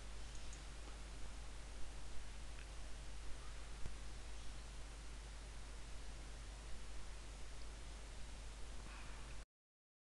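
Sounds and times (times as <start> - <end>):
low hum and hiss: 0.0 - 9.4.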